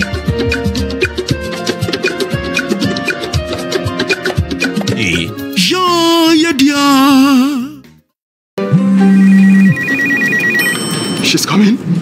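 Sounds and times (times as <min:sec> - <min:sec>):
music: 0:00.0 - 0:10.6
electronic telephone ring: 0:09.0 - 0:11.4.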